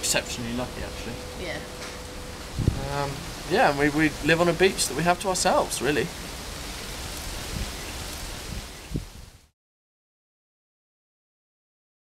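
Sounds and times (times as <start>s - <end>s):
steady hissing noise: 0.0s - 9.5s
faint low thumps: 0.6s - 5.0s.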